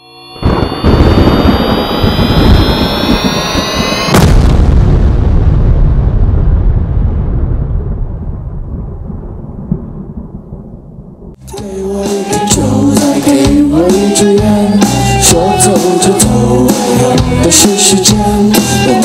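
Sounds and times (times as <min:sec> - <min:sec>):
rising swelling tone: 0:00.0 - 0:04.9
heavy boom with low rumble: 0:00.4 - 0:11.4.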